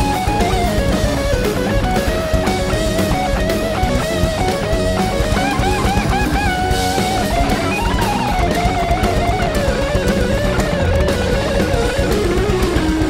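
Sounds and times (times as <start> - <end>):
drums: 0.0 - 13.0
electric guitar melody: 0.0 - 13.0.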